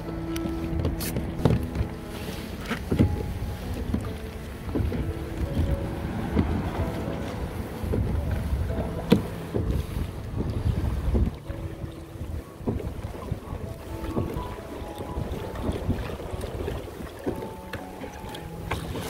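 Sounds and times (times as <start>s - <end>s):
water slapping against hull: 0.0s - 19.0s
wind buffeting microphone: 0.0s - 19.0s.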